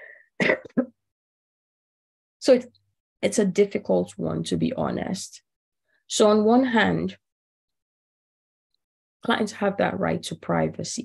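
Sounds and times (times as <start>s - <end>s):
woman clearing throat: 0.4s - 1.0s.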